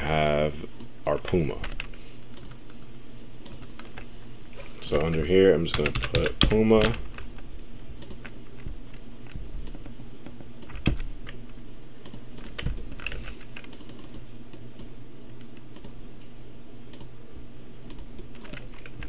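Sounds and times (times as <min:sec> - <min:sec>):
steady low hum: 0:00.0 - 0:19.0
keyboard and mouse clicking: 0:03.4 - 0:04.0, 0:08.0 - 0:08.4, 0:09.3 - 0:11.4, 0:12.0 - 0:14.9, 0:15.7 - 0:16.0, 0:16.9 - 0:17.1, 0:17.9 - 0:19.0.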